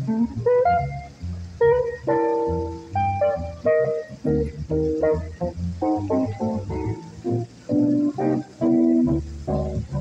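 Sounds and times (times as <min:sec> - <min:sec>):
electric jazz guitar: 0:00.0 - 0:10.0
plucked double bass: 0:00.0 - 0:10.0.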